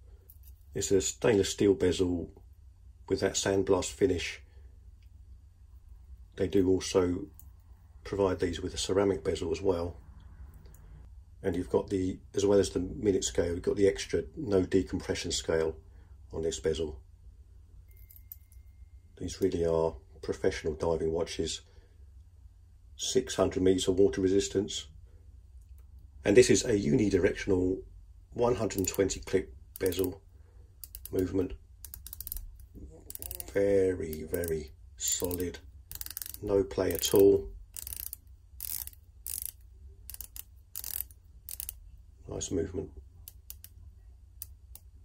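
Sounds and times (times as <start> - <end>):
watch bracelet metallic clicks: 30.8 - 31.2, 31.8 - 33.6, 35.2 - 41.8, 43.2 - 43.8.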